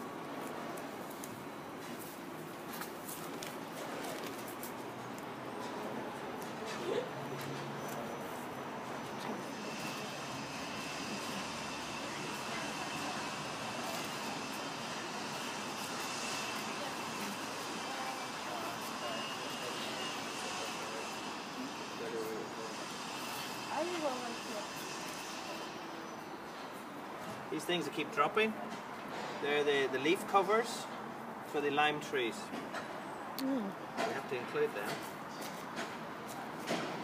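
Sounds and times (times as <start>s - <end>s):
outdoor background noise: 0.0s - 37.0s
distant engine with high whine: 5.4s - 26.6s.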